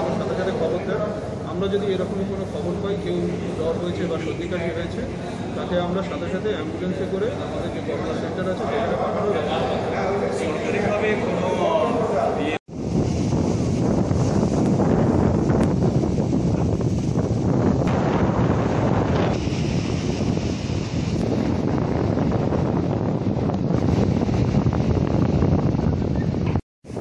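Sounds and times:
sea waves breaking on shore: 0.0s - 27.0s
wind buffeting microphone: 12.0s - 27.0s.

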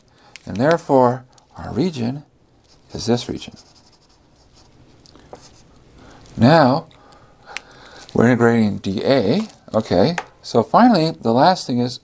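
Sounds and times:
marker scribbling on paper: 2.7s - 4.8s.

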